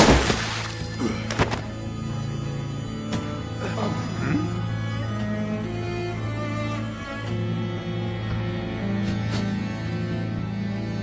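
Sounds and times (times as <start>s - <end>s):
body thud on floor: 0.0s - 1.7s
background music with low drone: 0.0s - 11.0s.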